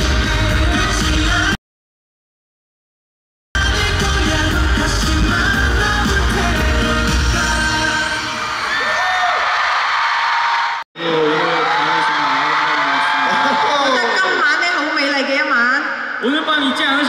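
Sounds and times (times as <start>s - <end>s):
heavy bass beat: 0.0s - 1.6s, 3.6s - 7.9s
live pop music with vocal: 0.0s - 1.6s, 3.6s - 9.4s.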